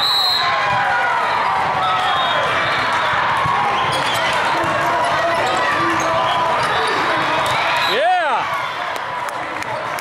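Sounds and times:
crowd voices and shouts: 0:00.0 - 0:10.0.

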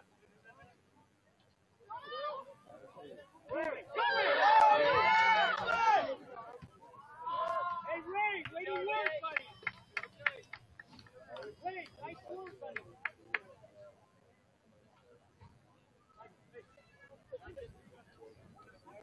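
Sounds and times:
people shouting: 0:03.5 - 0:06.2.

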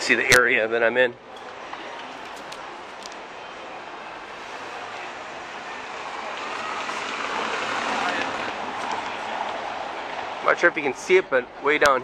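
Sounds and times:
traffic on cobbled street: 0:00.0 - 0:12.0.

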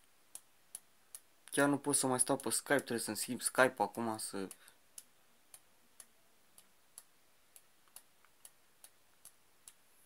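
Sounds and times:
faint sharp clicks: 0:00.0 - 0:09.8.

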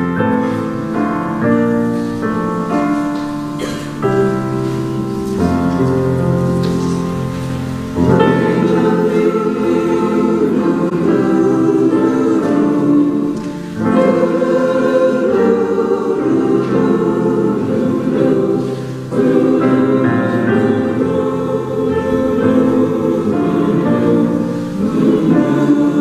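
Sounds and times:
mixed choir singing: 0:00.0 - 0:26.0.

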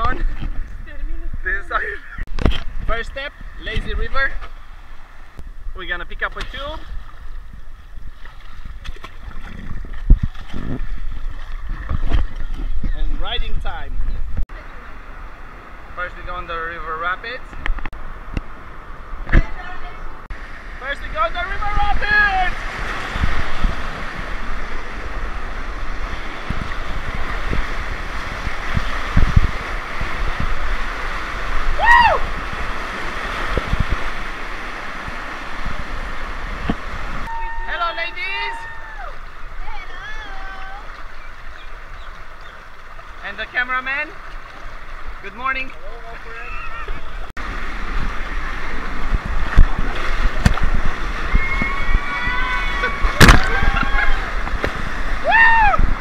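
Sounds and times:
water washing: 0:00.0 - 0:56.0.

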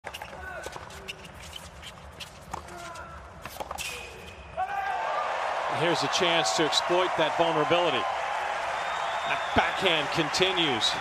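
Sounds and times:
shoes squeaking on court: 0:00.0 - 0:04.6
stadium crowd murmur: 0:05.6 - 0:11.0.

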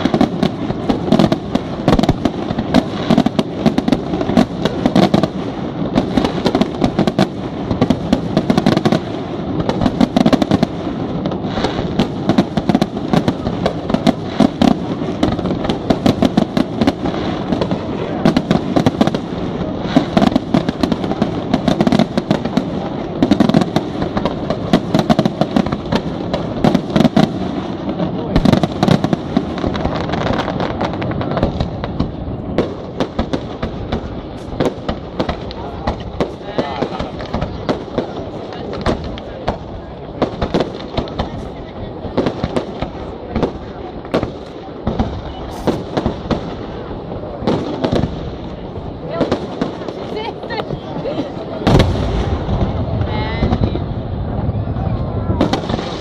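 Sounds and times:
fireworks crackling: 0:00.0 - 0:56.0
firework shell bursts: 0:45.4 - 0:46.0.

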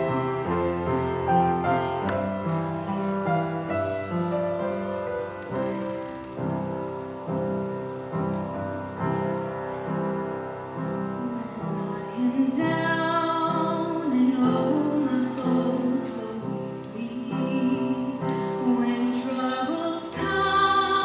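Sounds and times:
piano playing repeated chords: 0:00.0 - 0:21.0
woman singing into a microphone: 0:11.0 - 0:21.0.

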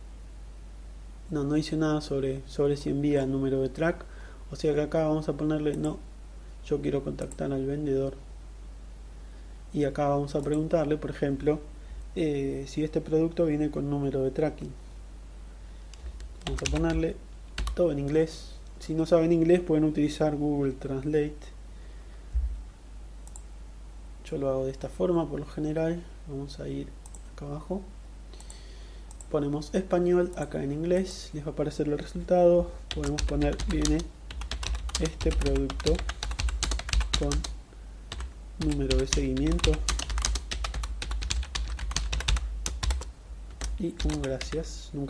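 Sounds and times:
steady low hum: 0:00.0 - 0:45.0
computer mouse click: 0:23.2 - 0:23.5.

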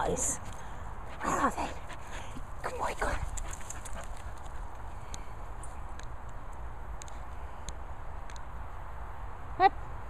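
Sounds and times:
faint light clicks: 0:05.9 - 0:08.5.

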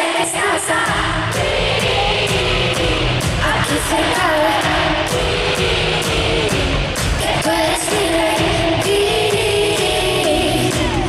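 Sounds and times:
woman singing into microphone: 0:00.0 - 0:11.0
pop backing track with beat: 0:00.2 - 0:11.0.

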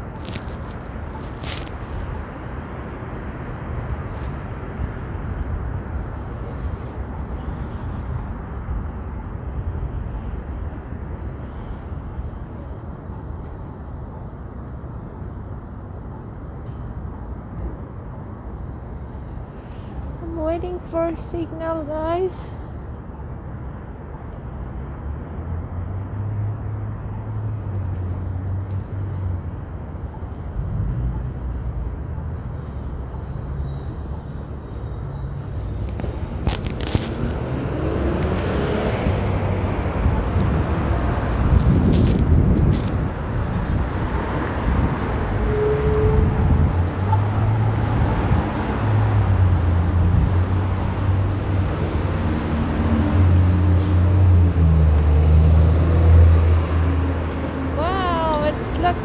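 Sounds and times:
cars passing: 0:00.0 - 0:59.0
large vehicle engine rumble: 0:26.6 - 0:59.0.

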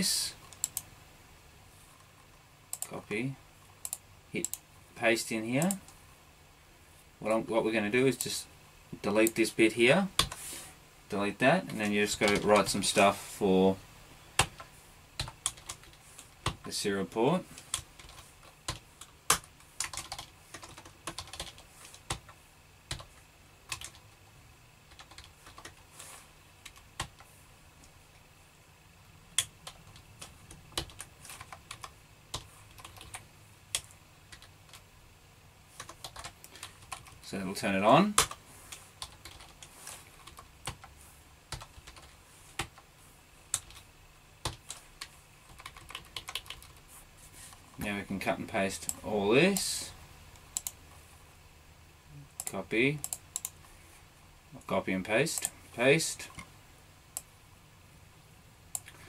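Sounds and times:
computer keyboard typing: 0:12.1 - 0:12.7, 0:14.4 - 0:16.6, 0:17.6 - 0:24.1, 0:24.9 - 0:25.8, 0:29.4 - 0:34.8, 0:35.8 - 0:37.2, 0:38.1 - 0:38.4, 0:39.0 - 0:40.9, 0:41.5 - 0:42.8, 0:43.5 - 0:43.8, 0:44.4 - 0:46.8, 0:50.5 - 0:50.8, 0:52.4 - 0:53.6
typing on computer keyboard: 0:17.7 - 0:22.3, 0:24.9 - 0:25.8, 0:35.8 - 0:37.2, 0:45.5 - 0:46.8.

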